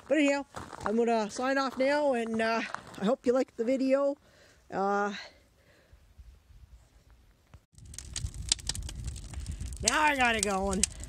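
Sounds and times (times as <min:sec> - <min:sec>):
wood fire crackling and popping: 0:07.7 - 0:11.0
low rumble of flame: 0:07.8 - 0:11.0.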